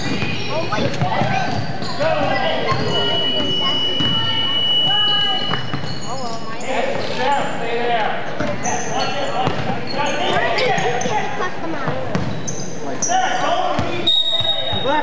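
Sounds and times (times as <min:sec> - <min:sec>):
basketball bouncing: 0:00.0 - 0:04.3, 0:05.5 - 0:06.0, 0:09.4 - 0:09.8, 0:11.9 - 0:12.5
sneakers squeaking: 0:00.0 - 0:07.6, 0:08.2 - 0:15.0
voices in a large hall: 0:00.0 - 0:15.0.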